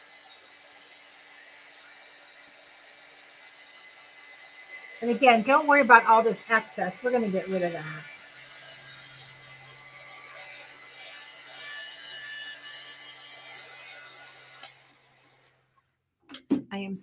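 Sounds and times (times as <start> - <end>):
heat gun fan hum and hiss: 0.0 - 8.6.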